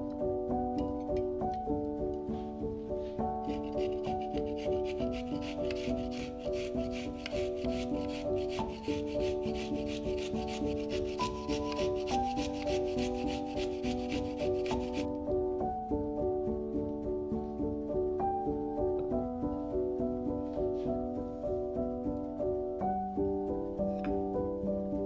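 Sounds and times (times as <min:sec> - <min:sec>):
background music: 0:00.0 - 0:25.0
garlic grated on a metal grater: 0:03.4 - 0:15.1.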